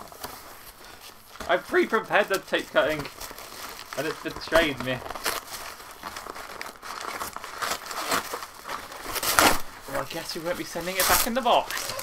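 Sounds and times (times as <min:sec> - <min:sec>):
cardboard crinkling and scraping: 0:00.0 - 0:12.0
taped cardboard flaps tearing: 0:04.0 - 0:09.7.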